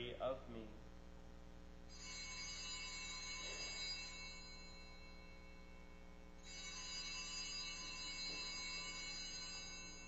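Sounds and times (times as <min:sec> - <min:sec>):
altar bells ringing: 0:01.9 - 0:10.0.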